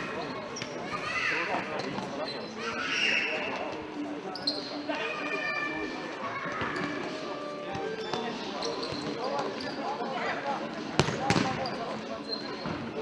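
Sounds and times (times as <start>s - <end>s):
players' voices: 0.0s - 13.0s
shoe squeaks on floor: 0.2s - 0.9s, 1.7s - 4.9s, 6.4s - 10.1s, 11.0s - 13.0s
ball struck and bouncing: 11.0s - 11.6s
sharp loud ball hits: 11.0s - 11.6s.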